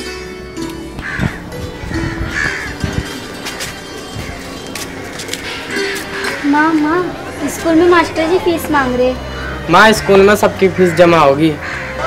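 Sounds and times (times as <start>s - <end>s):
background music: 0.0s - 12.0s
crow cawing: 1.0s - 12.0s.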